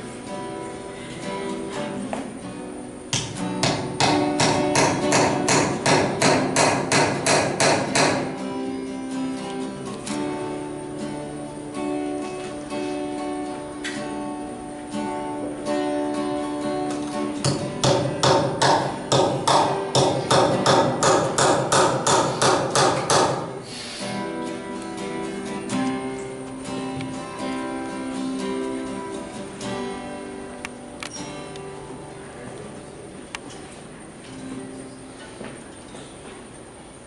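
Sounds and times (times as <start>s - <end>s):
acoustic guitar music: 0.0s - 37.0s
hammer hitting nail into wood: 3.2s - 8.3s, 17.4s - 23.5s.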